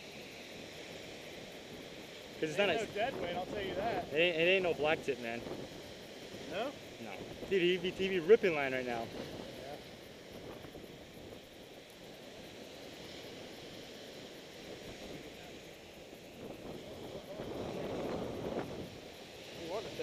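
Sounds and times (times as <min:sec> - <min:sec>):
surf washing onto beach: 0:00.0 - 0:20.0
wind buffeting microphone: 0:02.4 - 0:11.7, 0:14.4 - 0:20.0.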